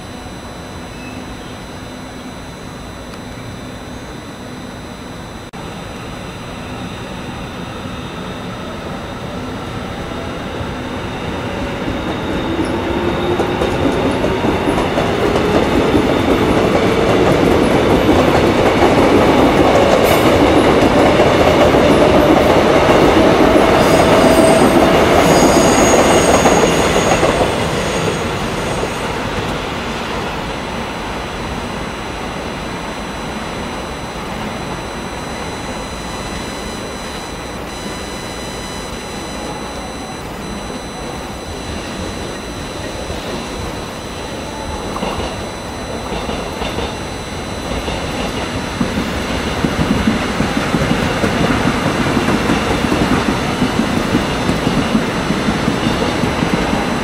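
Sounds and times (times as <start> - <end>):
electric train motor whine: 0.0 - 21.2, 21.9 - 55.8
high wheel squeal: 23.8 - 29.2.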